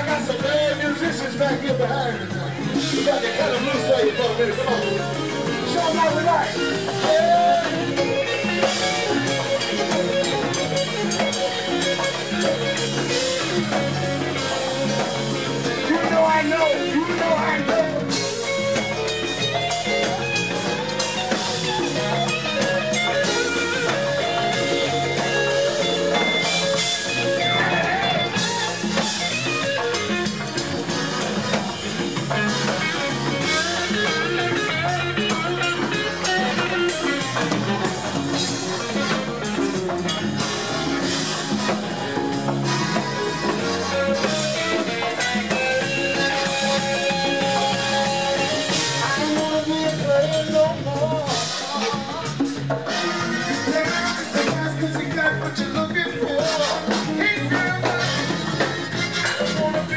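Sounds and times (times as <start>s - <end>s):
drum kit: 0.0s - 59.9s
electric guitar: 0.0s - 59.9s
live funk band: 0.0s - 59.9s.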